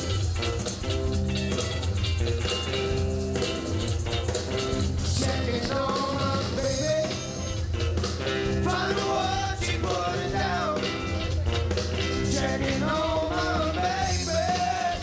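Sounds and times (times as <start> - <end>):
electric blues band playing: 0.0 - 15.0
blues harmonica: 6.2 - 9.4.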